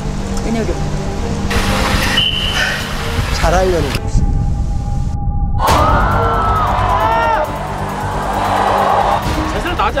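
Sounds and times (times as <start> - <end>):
music: 0.0 - 10.0
rushing noise burst: 1.5 - 4.0.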